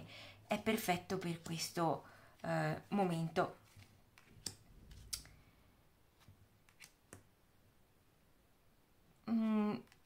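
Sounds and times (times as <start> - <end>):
cards clicking on a table: 6.6 - 7.3.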